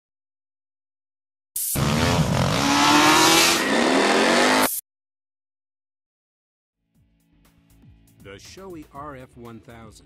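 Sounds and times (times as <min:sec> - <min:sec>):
vehicle engine revving: 0:01.8 - 0:04.8.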